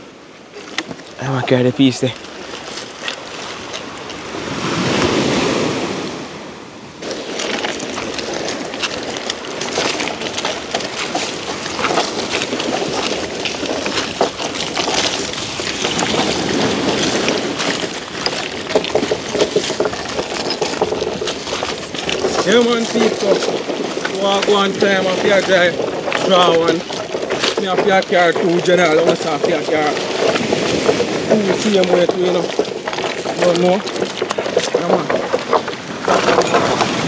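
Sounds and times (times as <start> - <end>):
small waves breaking on beach: 0.0 - 37.0
stones clicking and rattling: 0.6 - 4.3, 7.0 - 37.0.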